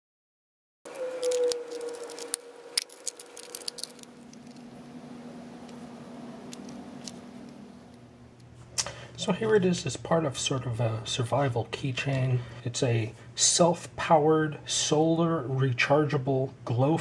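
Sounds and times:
steady low hum: 0:00.9 - 0:17.0
plastic box and keys rattling: 0:01.2 - 0:04.7.

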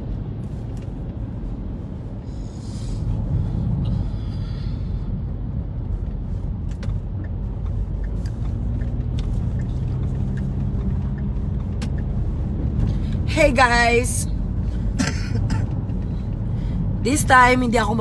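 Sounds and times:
car engine rumble: 0:00.0 - 0:18.0
road noise: 0:00.0 - 0:18.0.

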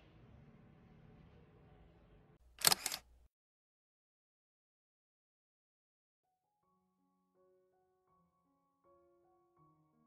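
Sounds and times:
sharp double click: 0:02.6 - 0:03.2.

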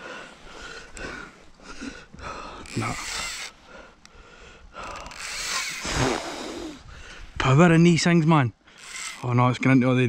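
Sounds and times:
man breathing heavily: 0:00.0 - 0:07.4.

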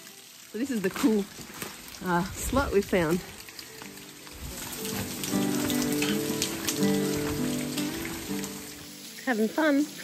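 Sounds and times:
rain patter: 0:00.0 - 0:10.0.

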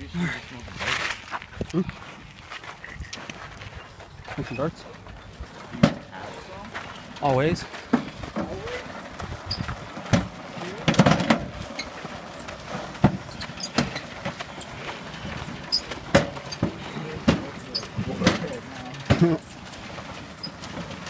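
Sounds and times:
tyres crunching on gravel: 0:00.3 - 0:21.0
mower knocking and clunking: 0:04.3 - 0:21.0.

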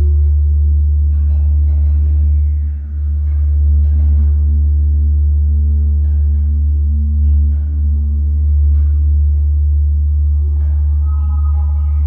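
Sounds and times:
faint higher sounds: 0:00.0 - 0:12.0
low droning music: 0:00.0 - 0:12.0
bell-like tones: 0:10.8 - 0:12.0.

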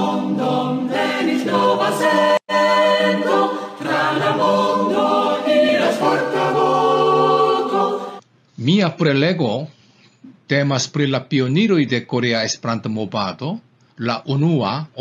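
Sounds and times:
choir singing held chords: 0:00.0 - 0:08.2.

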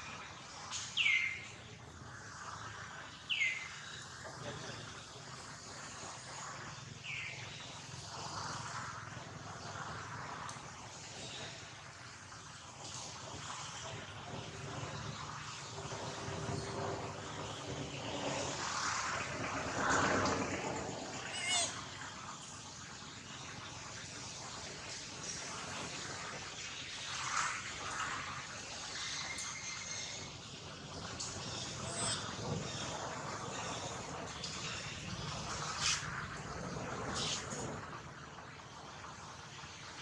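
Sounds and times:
bird chirps sweeping downward: 0:00.7 - 0:01.7
high wavering bird call: 0:21.2 - 0:21.8.

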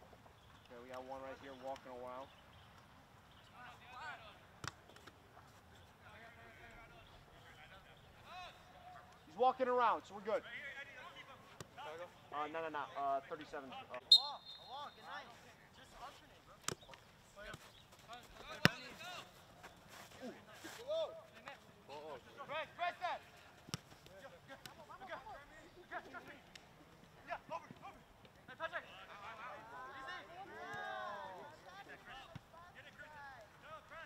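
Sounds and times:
high whistle blast: 0:14.1 - 0:14.9
players and spectators shouting: 0:29.1 - 0:32.3.

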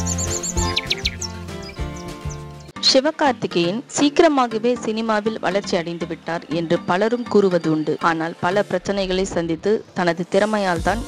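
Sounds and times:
birds chirping: 0:00.0 - 0:02.8, 0:04.9 - 0:10.0
calm music of held notes: 0:00.0 - 0:08.9.

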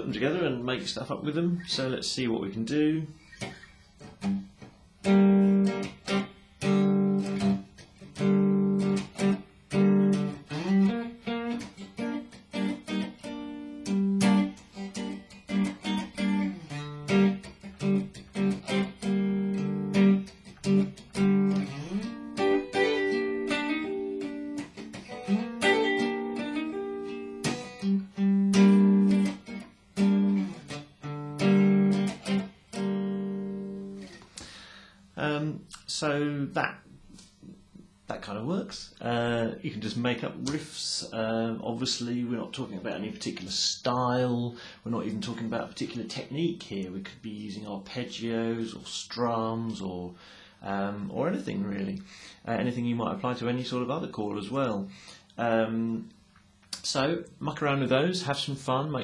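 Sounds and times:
electric guitar picked chords: 0:04.1 - 0:34.9.

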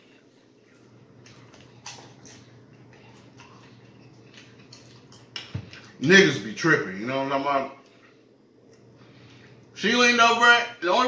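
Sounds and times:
chewing popcorn: 0:00.2 - 0:06.0
wet mouth clicks: 0:01.2 - 0:06.0.

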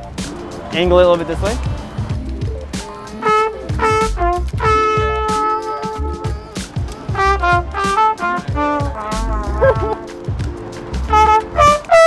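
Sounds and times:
solo trumpet: 0:03.2 - 0:10.1, 0:11.1 - 0:12.0.

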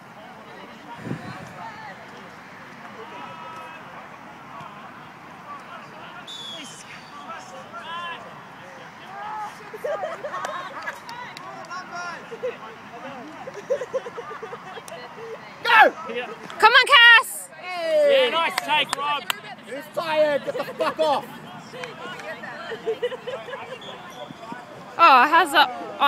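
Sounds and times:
distant players shouting: 0:05.6 - 0:09.6, 0:15.2 - 0:20.2.

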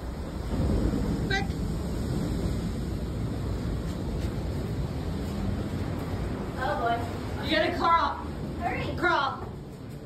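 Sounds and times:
wind buffeting microphone: 0:00.0 - 0:09.9
ocean surf rumble: 0:00.0 - 0:10.0.

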